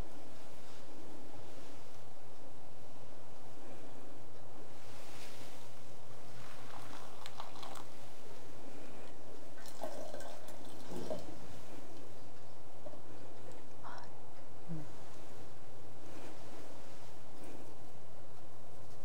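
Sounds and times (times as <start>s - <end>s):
hot water pouring: 6.5s - 7.9s, 9.6s - 11.4s.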